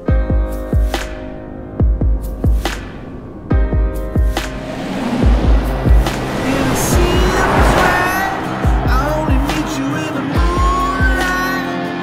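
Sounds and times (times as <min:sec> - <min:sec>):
tyres squealing and skidding: 0:04.4 - 0:11.8.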